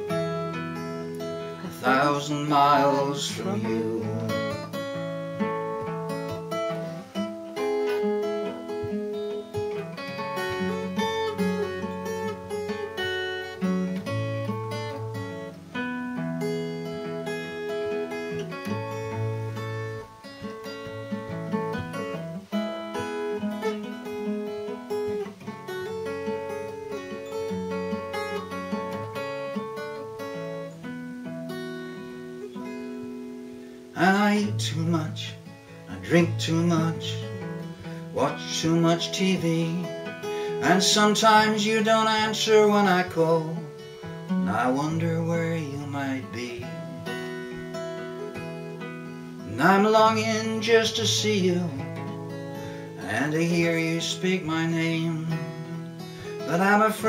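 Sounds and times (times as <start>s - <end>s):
acoustic guitar picking and strumming: 0.0s - 57.0s.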